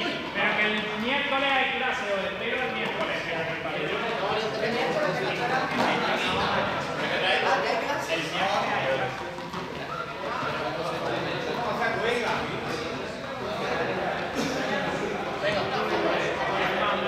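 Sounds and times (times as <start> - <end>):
voices chattering in a hall: 0.0 - 17.0.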